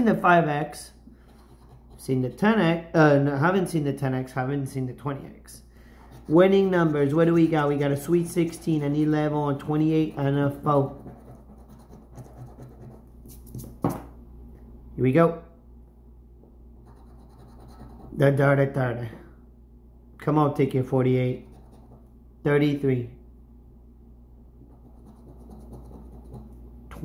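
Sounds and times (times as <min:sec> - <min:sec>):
coin scratching lottery ticket: 0:10.7 - 0:13.4, 0:16.9 - 0:18.2, 0:24.8 - 0:26.4
coin scraping a scratch card: 0:24.8 - 0:26.4.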